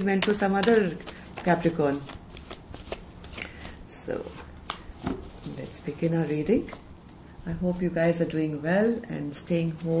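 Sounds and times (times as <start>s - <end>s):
cards being shuffled: 0.0s - 3.8s.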